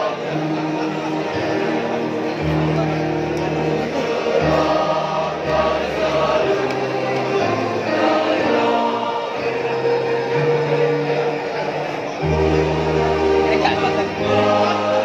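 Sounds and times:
choir singing held chords: 0.0s - 15.0s.

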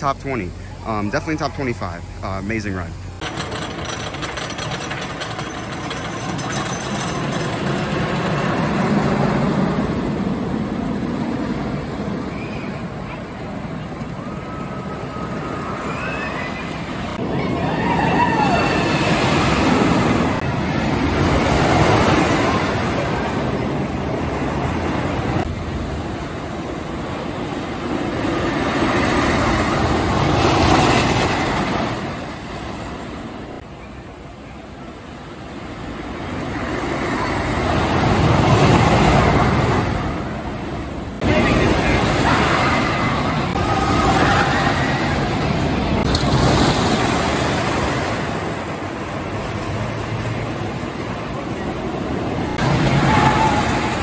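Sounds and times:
roller coaster rumbling on track: 0.0s - 54.0s.

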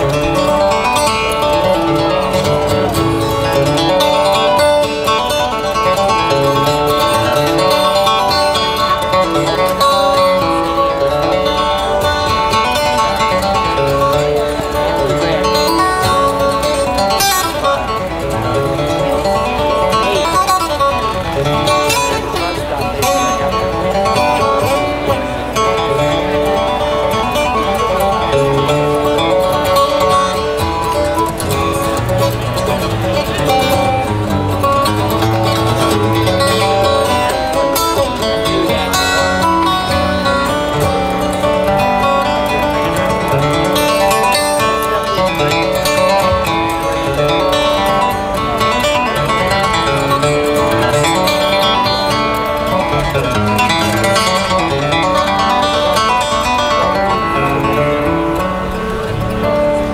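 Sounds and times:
acoustic guitar playing: 0.0s - 59.9s.

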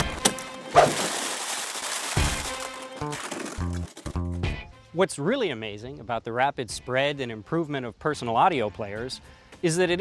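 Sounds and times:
background music: 0.0s - 1.2s, 2.1s - 10.0s.

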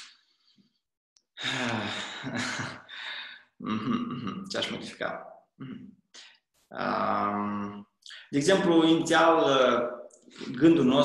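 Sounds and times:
man sighing: 1.4s - 3.8s
man hesitant uhh: 2.9s - 4.5s, 6.8s - 8.3s.

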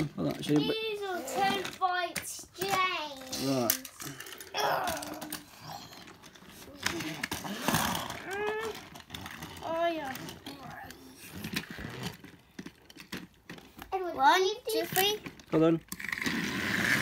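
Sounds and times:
plastic toy train clicks and knocks: 0.0s - 17.0s.

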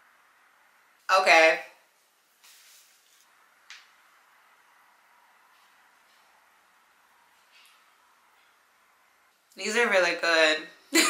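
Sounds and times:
faint rustle: 2.4s - 3.4s.

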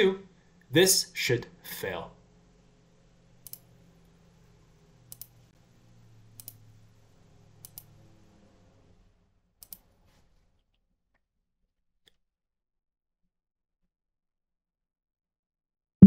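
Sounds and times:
low steady hum: 0.0s - 9.2s
computer mouse clicks: 3.4s - 3.7s, 5.1s - 5.4s, 6.4s - 6.6s, 7.6s - 7.9s, 9.6s - 9.9s.

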